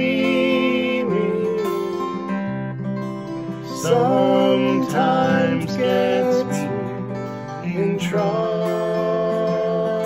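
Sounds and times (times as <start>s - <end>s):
acoustic guitars playing chords: 0.0s - 10.0s.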